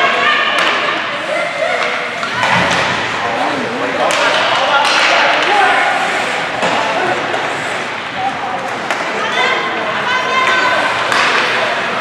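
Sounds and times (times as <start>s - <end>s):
spectators' voices and calls: 0.0s - 12.0s
hockey sticks and puck knocking: 4.0s - 5.5s, 8.7s - 9.2s, 10.4s - 11.8s.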